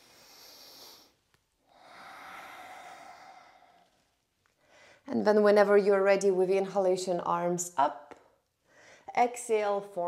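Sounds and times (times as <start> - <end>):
person breathing: 0.0 - 5.1, 8.6 - 9.1.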